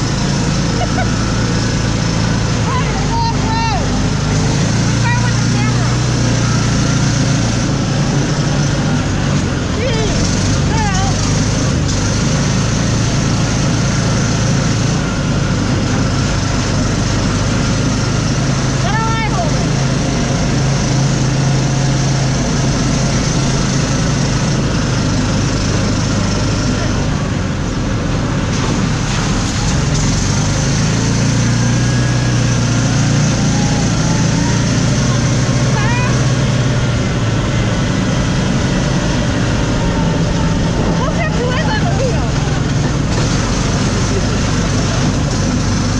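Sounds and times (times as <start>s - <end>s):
off-road vehicle engine running: 0.0s - 45.9s
road noise: 0.0s - 45.9s.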